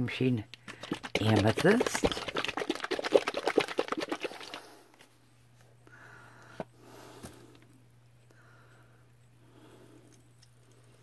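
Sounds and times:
faint hum: 0.0 - 11.0
paint bottle rattling and sloshing: 0.5 - 4.8.

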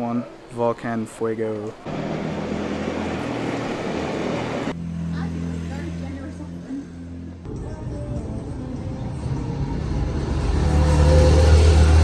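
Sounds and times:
street traffic: 1.3 - 12.0
motor vehicle engine hum: 1.7 - 12.0.

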